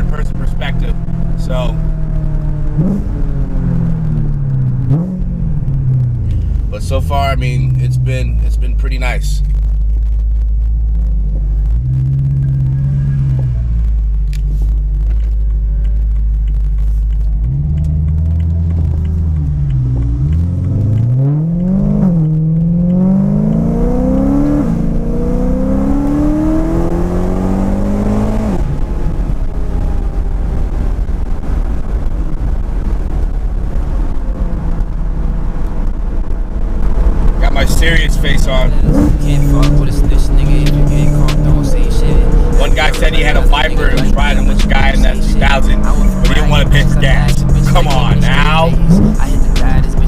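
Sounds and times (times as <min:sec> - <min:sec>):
car engine accelerating: 0:00.0 - 0:50.0
road drone: 0:00.0 - 0:50.0.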